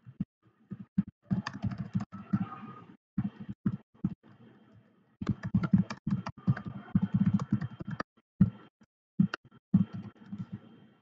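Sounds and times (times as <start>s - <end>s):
typing on a computer keyboard: 1.3s - 2.2s, 5.2s - 8.1s.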